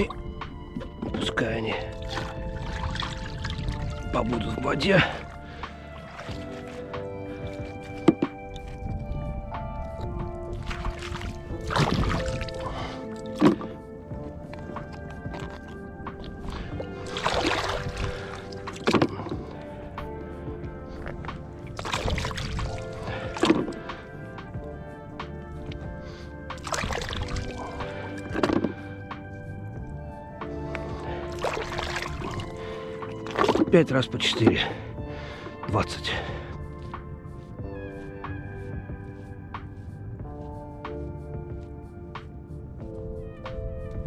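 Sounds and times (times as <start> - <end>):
background music with held notes: 0.0 - 44.0
water pouring into plastic bucket: 2.0 - 6.8, 10.6 - 13.7, 16.4 - 19.6, 21.7 - 24.0, 26.6 - 28.8, 31.1 - 33.8.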